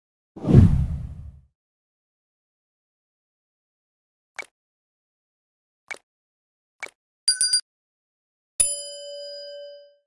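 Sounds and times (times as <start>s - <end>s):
deep whoosh: 0.4s - 1.4s.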